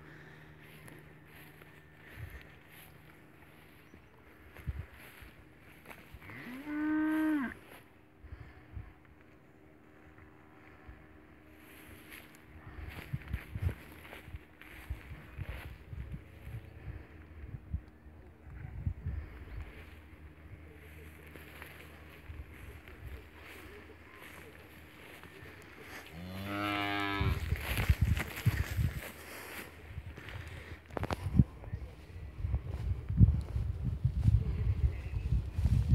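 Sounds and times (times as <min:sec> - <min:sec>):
calf mooing: 0:26.2 - 0:27.4.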